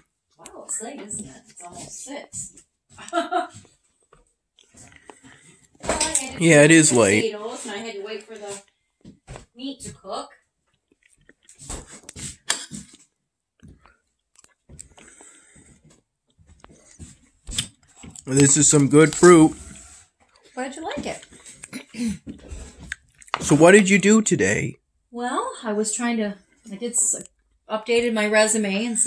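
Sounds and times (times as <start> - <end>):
faint chewing: 0.4 - 5.8, 10.3 - 23.4.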